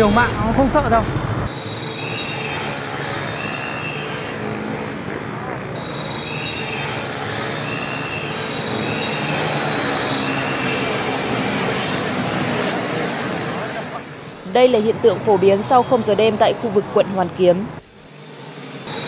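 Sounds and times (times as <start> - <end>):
motorbike engines: 0.0 - 19.0
road noise: 0.0 - 19.0
short high squeals: 1.5 - 4.5, 5.8 - 12.5.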